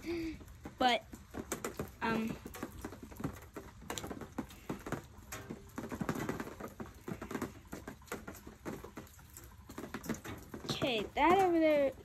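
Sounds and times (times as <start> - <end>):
raindrops hitting microphone: 0.0 - 12.0.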